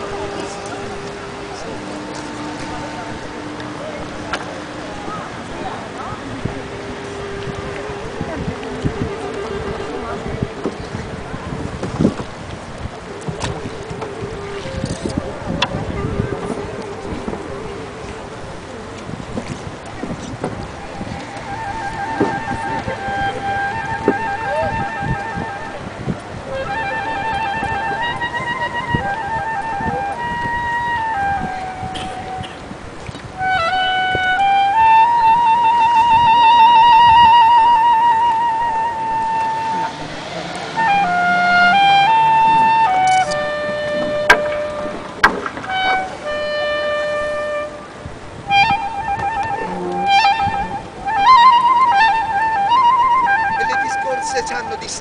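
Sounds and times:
clarinet note: 0.0s - 55.0s
wind rumbling on microphone: 0.0s - 55.0s.

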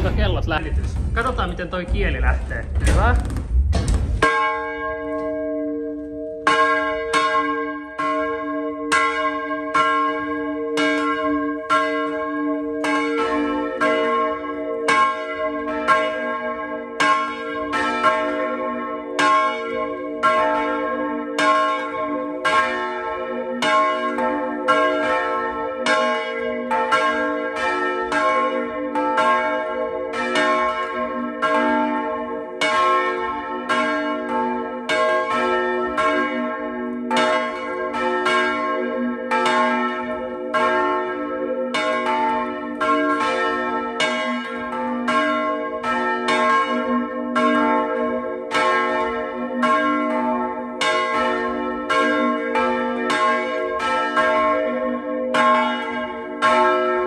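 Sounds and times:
deeper church bell ringing: 0.0s - 3.1s, 4.2s - 57.0s
church bell ringing: 4.2s - 57.0s.

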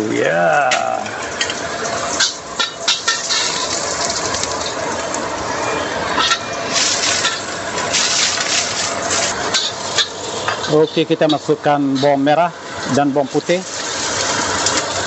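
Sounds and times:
ginger sizzling in hot oil: 0.0s - 15.0s
metal spatula stirring in wok: 2.2s - 3.7s.

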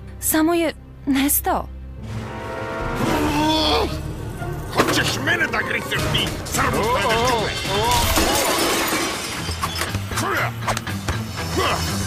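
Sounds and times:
glass and china shattering: 6.7s - 9.9s.

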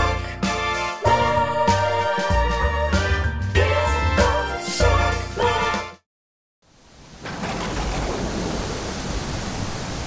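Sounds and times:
rush of surf: 7.2s - 10.0s.

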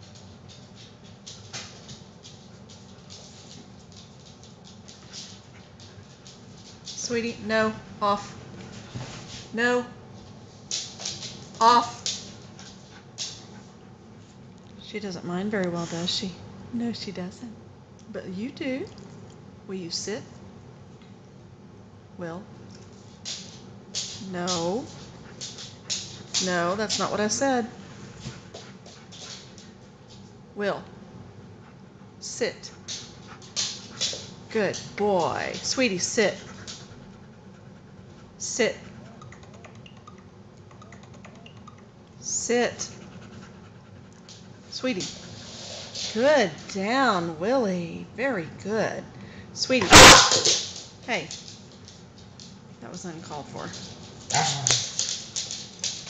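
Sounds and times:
dog claws ticking on floor: 22.7s - 27.2s, 32.8s - 35.9s, 49.9s - 52.6s, 53.6s - 56.0s.

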